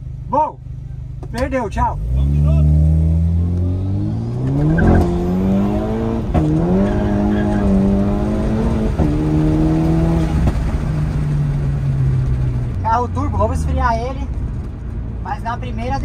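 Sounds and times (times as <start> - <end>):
car engine while driving: 0.0 - 16.0.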